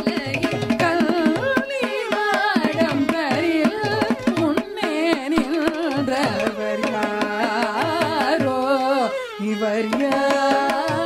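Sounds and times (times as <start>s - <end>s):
violin accompaniment: 0.0s - 11.0s
woman singing ornamented melody: 0.0s - 11.0s.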